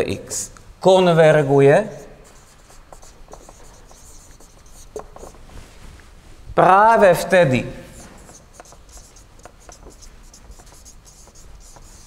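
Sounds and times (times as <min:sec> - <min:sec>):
marker squeaking on whiteboard: 0:01.8 - 0:05.4, 0:08.0 - 0:12.0.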